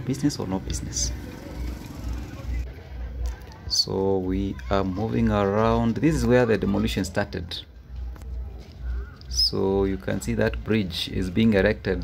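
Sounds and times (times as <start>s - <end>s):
low uneven street rumble: 0.0s - 12.0s.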